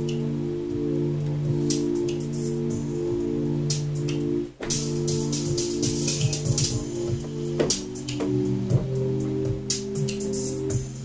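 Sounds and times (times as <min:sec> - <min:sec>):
synth chord: 0:00.0 - 0:11.0.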